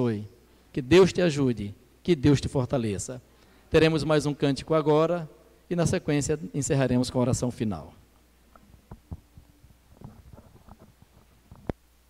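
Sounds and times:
faint low hum: 0:00.0 - 0:12.0
microphone handling thumps: 0:08.5 - 0:11.8.

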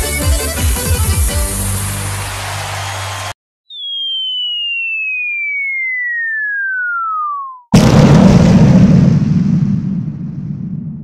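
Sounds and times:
music: 0:00.0 - 0:03.3
falling bomb whistle: 0:03.7 - 0:07.9.

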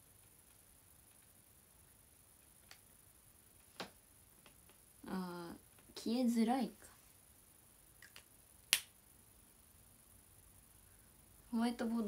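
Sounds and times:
marker faint ticks: 0:00.1 - 0:01.4.

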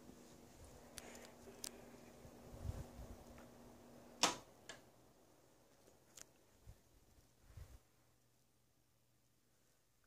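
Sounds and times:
faint fan hum: 0:00.0 - 0:10.0.

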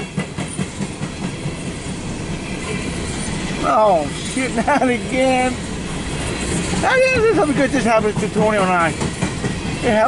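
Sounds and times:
freight train rolling rumble: 0:00.0 - 0:10.0.

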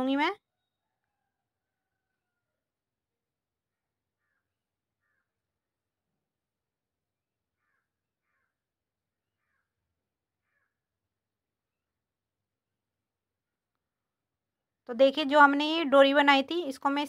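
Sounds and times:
faint short bird calls: 0:03.8 - 0:05.4, 0:07.6 - 0:08.6, 0:09.3 - 0:09.8, 0:10.4 - 0:10.9.

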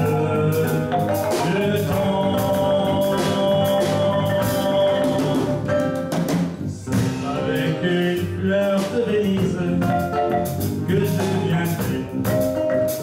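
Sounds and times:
drum strikes: 0:00.0 - 0:13.0
live band playing: 0:00.0 - 0:13.0.

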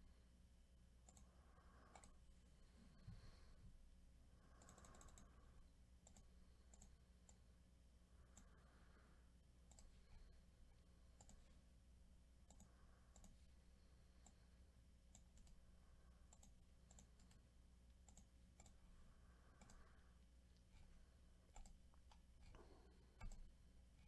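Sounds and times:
low steady hum: 0:00.0 - 0:24.0
computer mouse clicks: 0:01.0 - 0:02.2, 0:04.5 - 0:07.5, 0:08.3 - 0:08.6, 0:09.6 - 0:10.3, 0:11.1 - 0:11.6, 0:12.4 - 0:13.5, 0:14.2 - 0:14.4, 0:15.1 - 0:18.8, 0:19.4 - 0:24.0.

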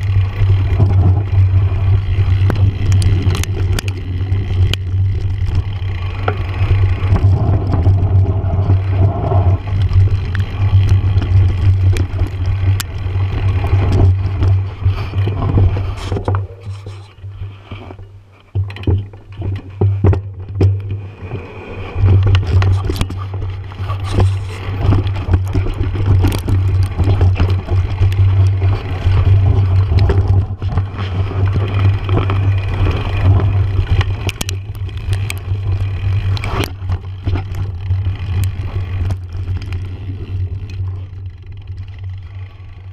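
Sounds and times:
bikes clicking and knocking: 0:00.0 - 0:42.9
mountain bikes rumbling on dirt: 0:00.0 - 0:42.9.

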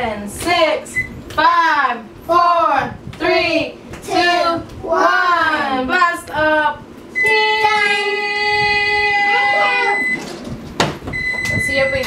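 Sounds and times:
oven timer high-pitched beep: 0:07.2 - 0:07.4, 0:09.5 - 0:10.2, 0:11.1 - 0:12.0.

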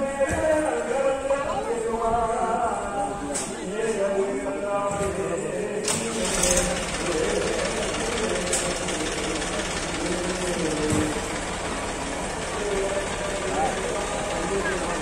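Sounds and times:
people talking indistinctly: 0:00.0 - 0:15.0.

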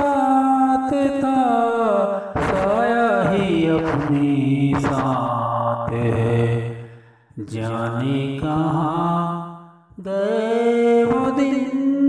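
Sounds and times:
film song with low voice: 0:00.0 - 0:12.0.

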